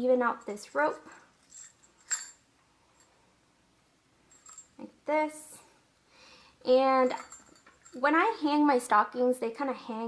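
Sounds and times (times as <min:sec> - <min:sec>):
small jingle bell jingling: 0:00.3 - 0:02.4, 0:04.2 - 0:04.8, 0:06.9 - 0:08.3.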